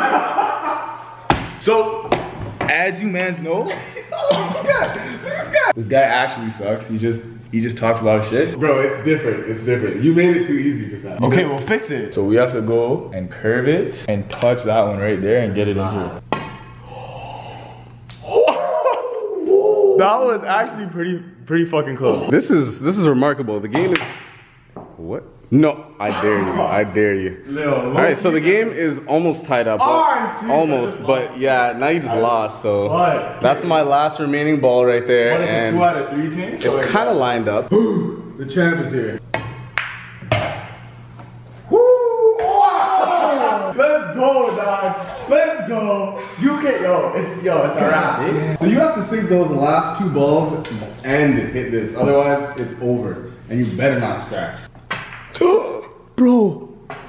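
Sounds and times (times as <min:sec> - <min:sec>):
pool balls colliding: 0:01.2 - 0:02.8, 0:16.2 - 0:16.7, 0:23.8 - 0:25.0, 0:39.2 - 0:41.3, 0:54.7 - 0:55.4
man exclaiming: 0:18.2 - 0:20.5, 0:41.7 - 0:45.1, 0:55.4 - 0:56.7
pool balls clicking: 0:39.2 - 0:41.4, 0:54.7 - 0:55.4.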